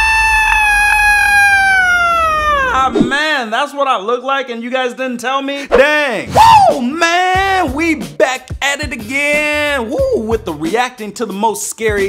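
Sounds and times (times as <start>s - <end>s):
man shrieking high-pitched: 0.0s - 3.1s, 6.3s - 6.8s.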